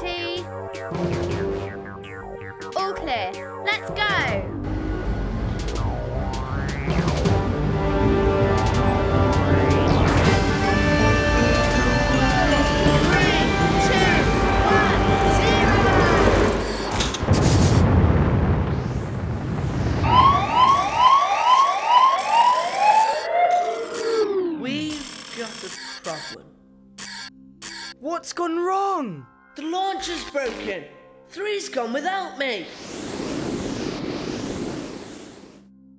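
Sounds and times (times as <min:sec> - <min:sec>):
music: 0:00.0 - 0:16.9, 0:26.0 - 0:32.6
electronic blips: 0:16.4 - 0:17.8, 0:20.6 - 0:26.4, 0:27.0 - 0:28.0
warbling electronic chirps: 0:20.2 - 0:26.4
rushing whoosh: 0:32.6 - 0:35.6.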